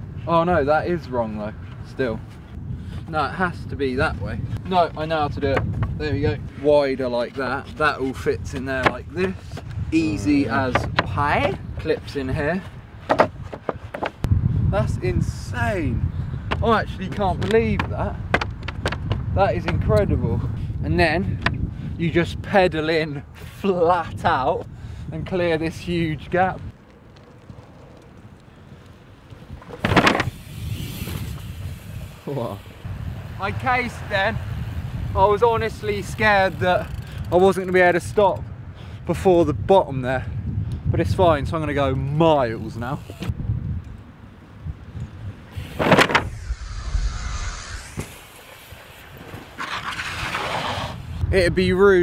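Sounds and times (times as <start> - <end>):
outdoor background noise: 0.0 - 52.0
mountain bike rushing up ramp: 29.6 - 37.2, 47.4 - 51.2
rush of air: 45.2 - 51.3.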